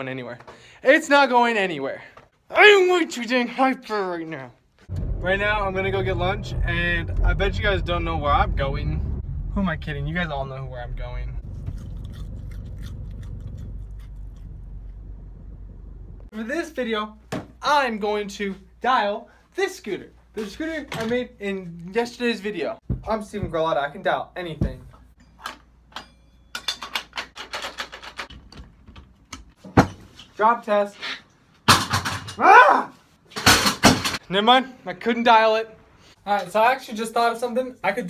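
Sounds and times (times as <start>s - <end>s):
car road and engine rumble: 4.9s - 16.3s
scooter parts rattling: 25.3s - 29.2s.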